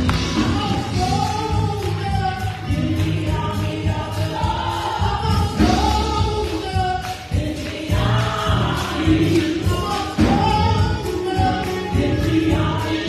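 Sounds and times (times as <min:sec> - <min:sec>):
gospel group singing: 0:00.0 - 0:13.0
instrumental accompaniment with bass: 0:00.0 - 0:13.0.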